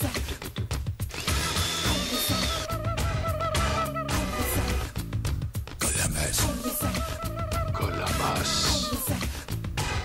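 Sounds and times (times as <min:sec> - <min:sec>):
blender motor whirring: 0:01.1 - 0:02.7
film song with a beat: 0:01.9 - 0:10.0.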